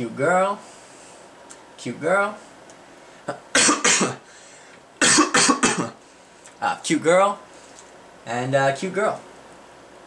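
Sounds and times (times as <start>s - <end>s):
person coughing: 3.5s - 4.3s, 5.0s - 6.0s.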